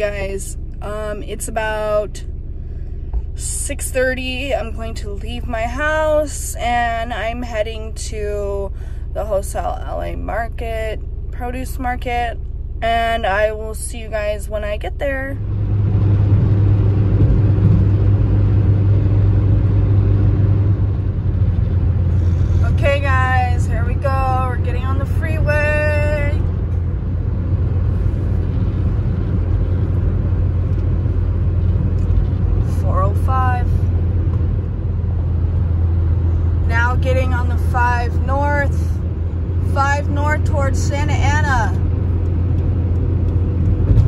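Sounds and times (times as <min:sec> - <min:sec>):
car road and engine drone: 0:00.0 - 0:44.0.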